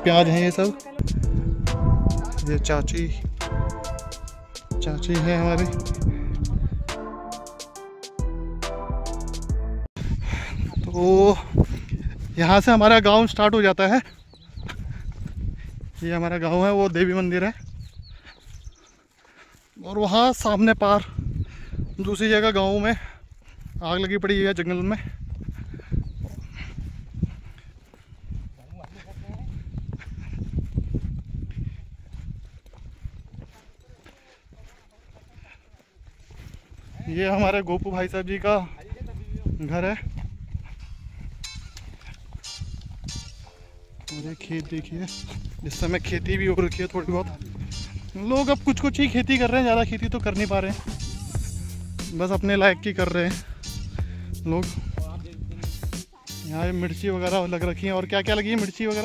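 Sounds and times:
low rumble: 1.0 - 3.8
footsteps on concrete: 17.9 - 20.4, 23.0 - 52.2.

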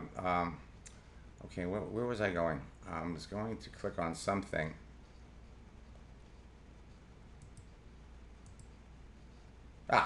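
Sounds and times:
low steady hum: 0.0 - 10.0
computer mouse clicks: 6.2 - 7.8, 8.4 - 8.8.

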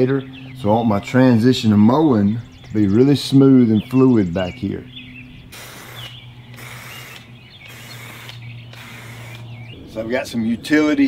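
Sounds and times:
aerosol can spraying: 5.6 - 9.5.

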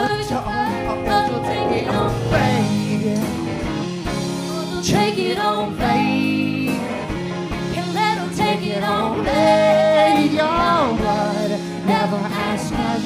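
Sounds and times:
person singing: 0.0 - 7.0, 7.8 - 13.0
folk band playing live: 0.0 - 13.0
guitar: 0.0 - 13.0.

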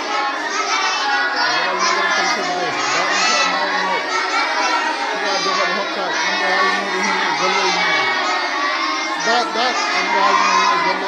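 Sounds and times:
children chanting together: 0.0 - 11.0.

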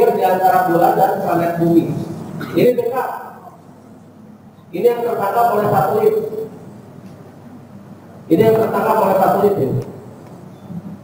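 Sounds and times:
man talking: 0.0 - 3.6, 4.7 - 6.6, 8.3 - 10.1
faint room noise: 0.0 - 11.0.

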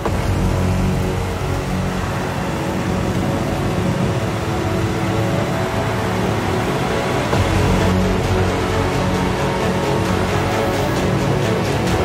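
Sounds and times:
background music: 0.0 - 12.0
tractor diesel engine under load: 0.0 - 12.0.

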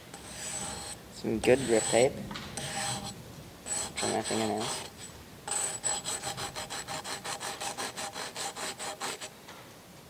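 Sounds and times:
hand rubbing grip tape: 3.7 - 9.3.

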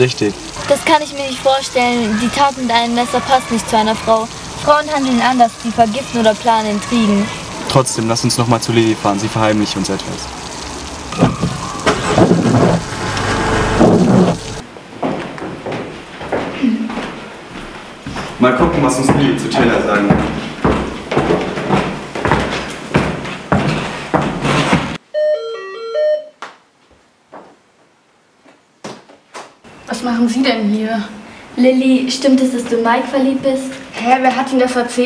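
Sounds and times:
steady hiss: 0.0 - 14.6
car engine starting and running: 11.8 - 14.6
electronic doorbell chime: 25.1 - 26.4.

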